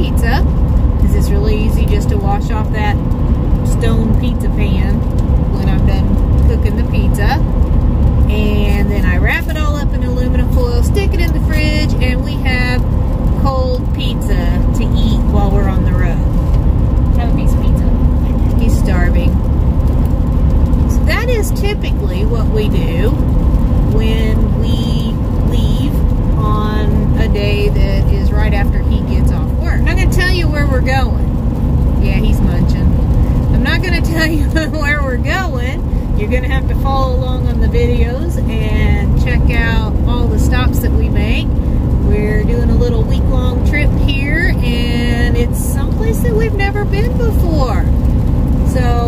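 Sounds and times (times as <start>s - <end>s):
woman talking: 0.0s - 3.0s, 3.7s - 7.5s, 8.3s - 16.4s, 17.2s - 19.4s, 20.9s - 23.2s, 23.9s - 31.3s, 32.0s - 49.0s
road and engine noise in truck: 0.0s - 49.0s.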